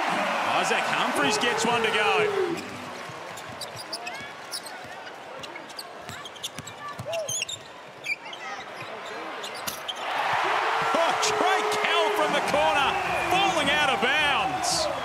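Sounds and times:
crowd cheering: 0.0s - 4.0s, 9.9s - 15.0s
sneakers squeaking: 2.6s - 10.4s.

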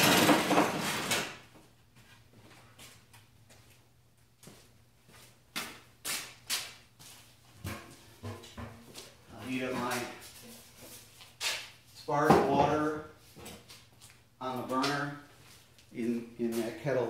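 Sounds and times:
footsteps: 4.4s - 17.0s.

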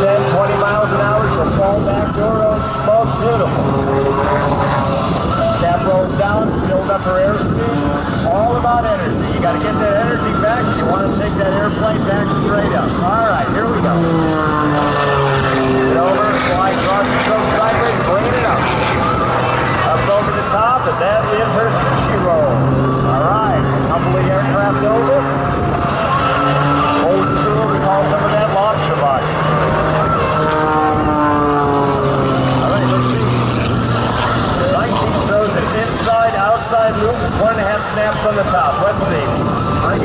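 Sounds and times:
propeller plane engine: 0.0s - 40.0s.

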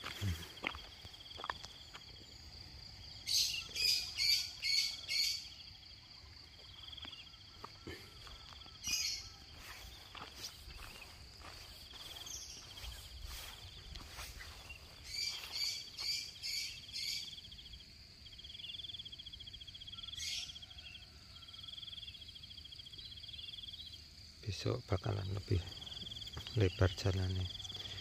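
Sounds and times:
insects chirring: 0.0s - 28.0s
short high insect chirps: 8.6s - 20.4s.

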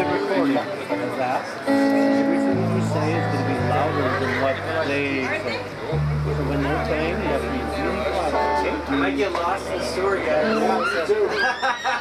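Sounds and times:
electric bass held low notes: 0.0s - 11.4s
chatter of voices: 0.0s - 12.0s.

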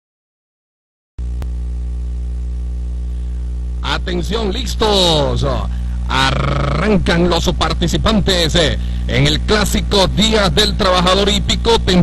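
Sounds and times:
electrical mains hum: 1.2s - 12.0s
man talking: 3.8s - 12.0s.

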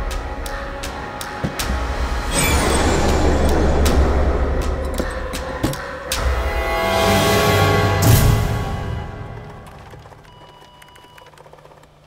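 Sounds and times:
fax machine ticking: 10.1s - 11.9s.

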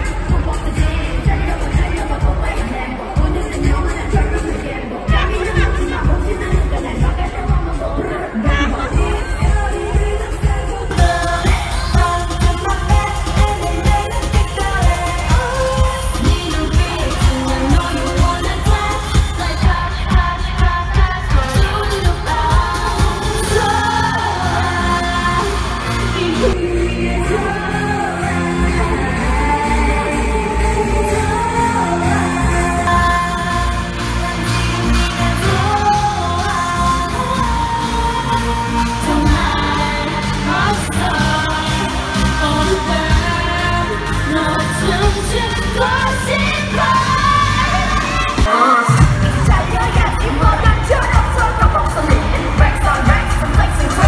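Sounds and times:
girl group singing: 0.0s - 54.0s
pop backing track: 0.0s - 54.0s
thumping beat: 49.0s - 54.0s.

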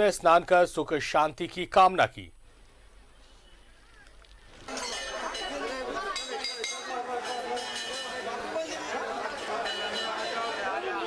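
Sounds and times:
crowd chatter: 4.7s - 11.0s.

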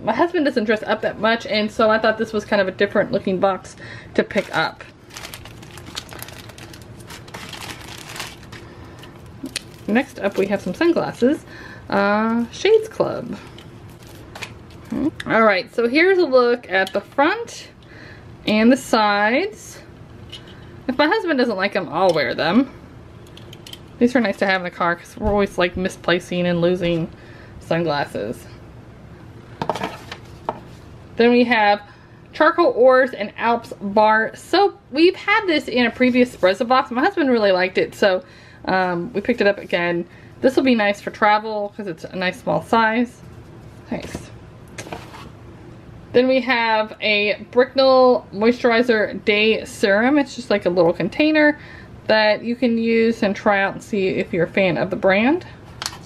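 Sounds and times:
plastic bag crinkling: 4.3s - 11.4s, 13.8s - 15.0s.

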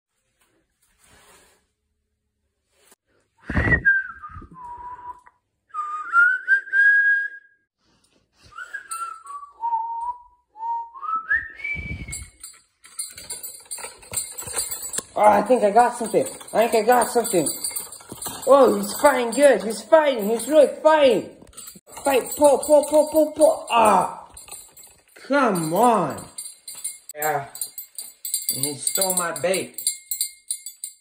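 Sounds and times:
person whistling a slow tune: 3.4s - 7.7s, 8.4s - 12.4s.

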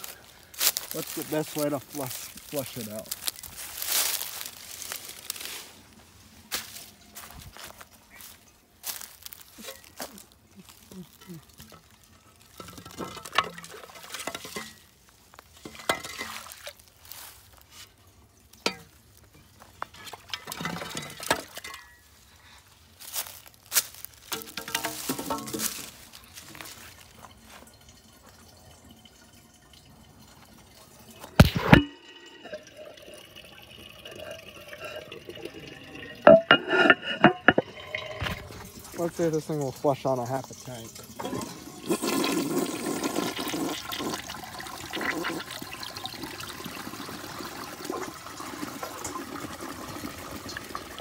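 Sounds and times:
water running: 0.0s - 21.8s, 24.3s - 51.0s
water sloshing and trickling: 0.0s - 51.0s.

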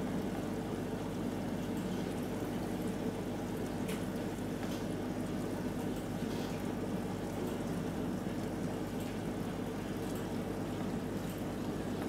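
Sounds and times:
aquarium water bubbling: 0.0s - 12.0s.

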